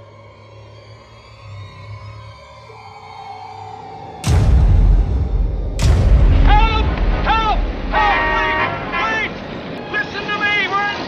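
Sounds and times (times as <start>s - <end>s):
passing traffic: 6.1s - 11.0s
car horns blaring: 6.3s - 10.4s
man shouting: 6.4s - 9.4s.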